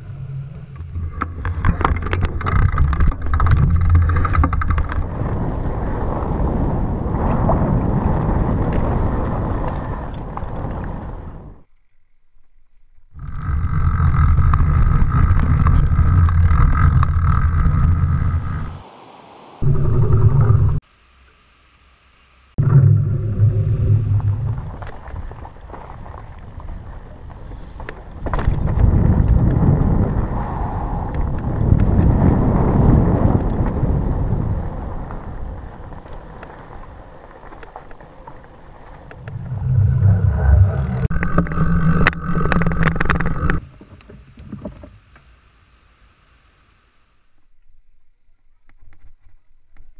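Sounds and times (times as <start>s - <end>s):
wind rushing over microphone: 0.0s - 11.6s, 14.5s - 20.8s, 22.6s - 37.4s, 38.7s - 42.2s
bike tires rumbling over trail: 0.0s - 12.0s, 13.1s - 20.8s, 22.6s - 45.1s
steady hum: 17.3s - 26.0s, 39.0s - 47.5s.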